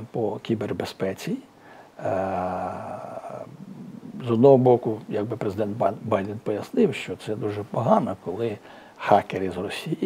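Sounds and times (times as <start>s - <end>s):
man's drawn-out hesitation sound: 2.0s - 8.4s.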